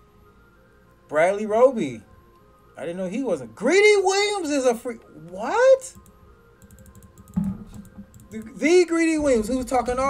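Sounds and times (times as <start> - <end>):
keyboard key clicks: 6.0 - 8.6.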